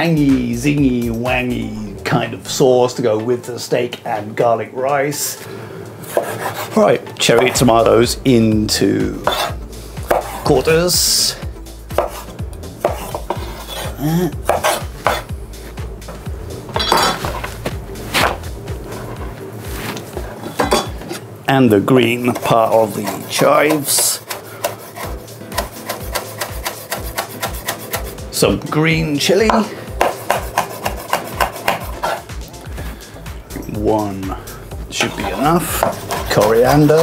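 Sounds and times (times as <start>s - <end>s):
knife scraping board: 6.0s - 7.6s, 9.2s - 10.5s, 12.0s - 15.3s, 22.3s - 28.2s, 30.0s - 32.3s, 35.0s - 37.0s.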